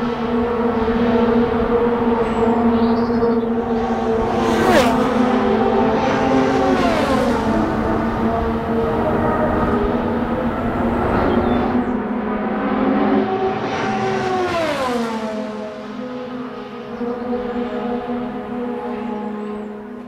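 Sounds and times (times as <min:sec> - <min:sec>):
race car engines droning: 0:00.0 - 0:20.0
race car passing by: 0:00.0 - 0:20.0.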